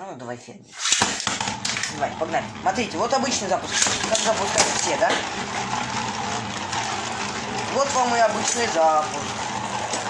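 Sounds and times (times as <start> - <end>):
spinning tops whirring on steel: 0.8 - 10.0.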